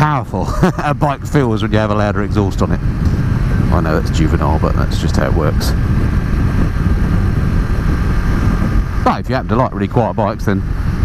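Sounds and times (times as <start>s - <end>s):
quiet motorcycle engine: 0.0s - 11.0s
wind buffeting microphone: 0.0s - 11.0s.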